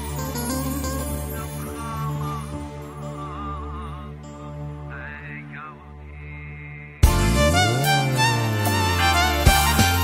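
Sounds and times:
high sliding melody line: 7.0 - 10.0.

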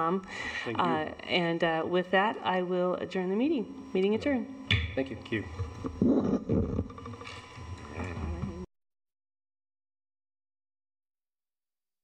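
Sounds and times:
murmured voice: 7.8 - 8.7.

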